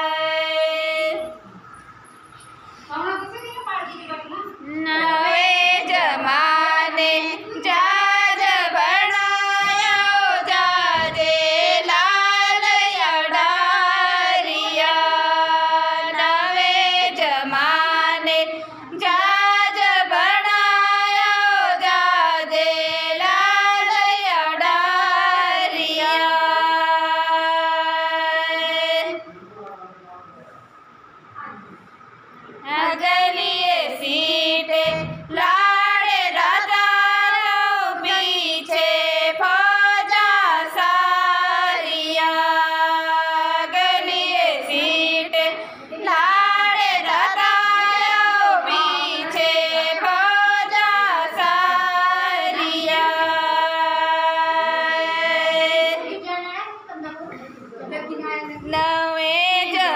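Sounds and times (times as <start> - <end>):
women singing unaccompanied: 0.0 - 1.6, 3.9 - 29.3, 32.6 - 56.1, 58.5 - 59.9.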